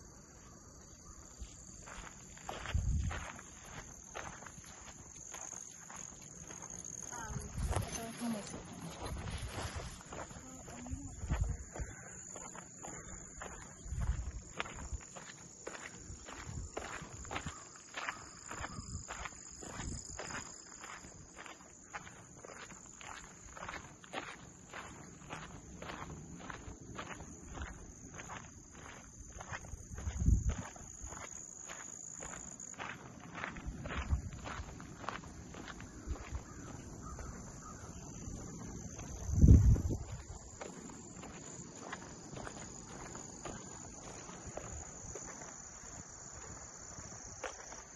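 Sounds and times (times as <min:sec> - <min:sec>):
footsteps on gravel: 0:00.1 - 0:47.9.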